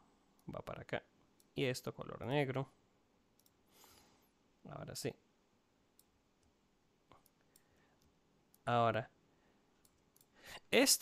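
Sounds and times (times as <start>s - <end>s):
faint computer mouse click: 3.4s - 3.6s.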